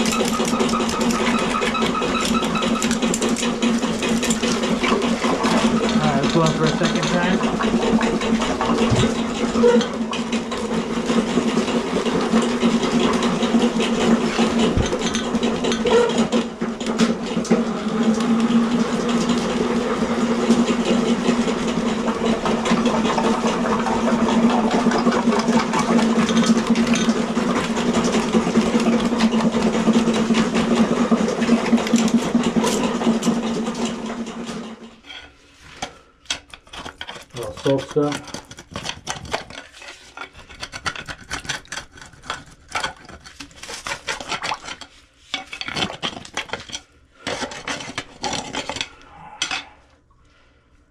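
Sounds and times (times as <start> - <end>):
cable rattling in pipe: 0.0 - 19.8, 20.5 - 35.1, 36.3 - 49.0
drain-cleaning machine motor hum: 0.0 - 35.0.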